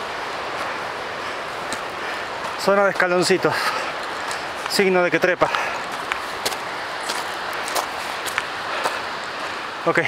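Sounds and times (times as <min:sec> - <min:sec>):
footsteps on rocky trail: 0:00.0 - 0:09.7
steady rushing noise: 0:00.0 - 0:10.0.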